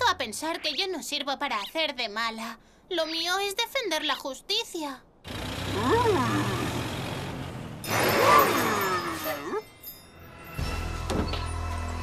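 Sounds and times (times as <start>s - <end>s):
cartoon bus engine hum: 5.2s - 9.7s.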